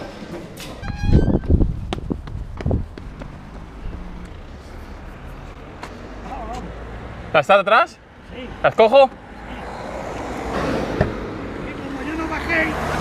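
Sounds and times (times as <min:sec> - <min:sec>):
street traffic: 0:00.0 - 0:13.0
short squeaky tone: 0:00.8 - 0:01.5.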